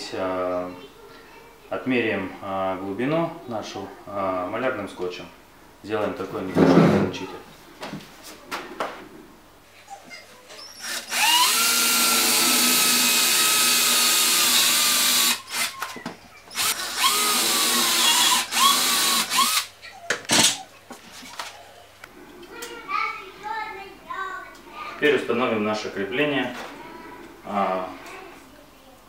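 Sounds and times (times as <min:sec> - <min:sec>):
cordless drill whining: 0:10.8 - 0:15.9, 0:16.5 - 0:19.7.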